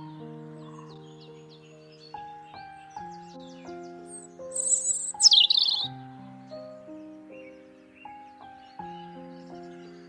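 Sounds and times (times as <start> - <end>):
robin singing: 0.0 - 10.0
soft background music: 0.0 - 10.0.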